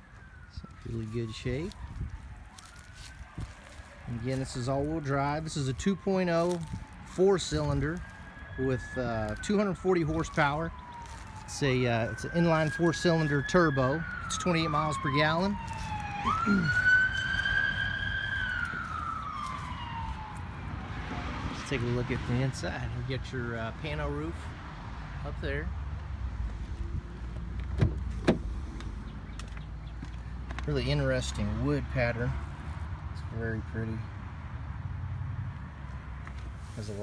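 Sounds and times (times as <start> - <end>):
siren wailing: 0.0 - 22.0.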